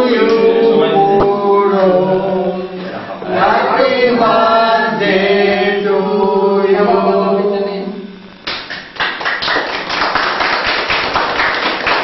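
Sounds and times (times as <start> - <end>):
group singing in unison: 0.0 - 8.3.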